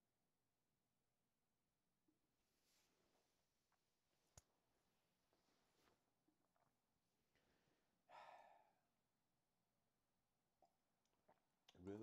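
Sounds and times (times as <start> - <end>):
man sighing: 8.1 - 8.8
man speaking: 11.8 - 12.0.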